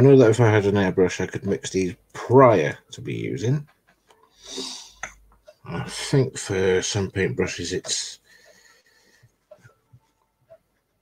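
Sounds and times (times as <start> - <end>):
faint soft ticks: 7.5 - 11.0.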